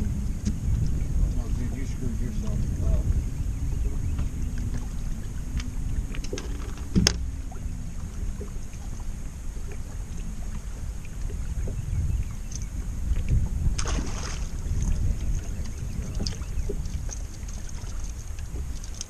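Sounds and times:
wind buffeting microphone: 0.0 - 19.0
fish splashing water surface: 13.7 - 15.0.

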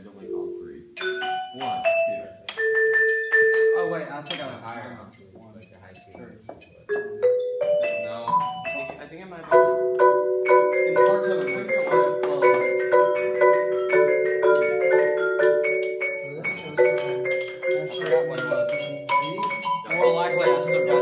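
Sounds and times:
marimbas playing: 0.0 - 21.0.

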